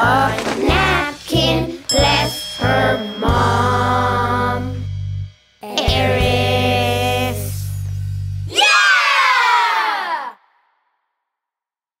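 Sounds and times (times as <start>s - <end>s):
song held low note: 0.0s - 8.5s
children shouting together: 8.5s - 10.4s.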